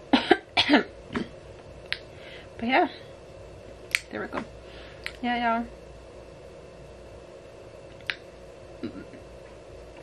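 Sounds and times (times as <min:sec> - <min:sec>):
woman clearing her throat: 0:00.1 - 0:01.3, 0:08.8 - 0:09.2
woman coughing: 0:00.1 - 0:01.3.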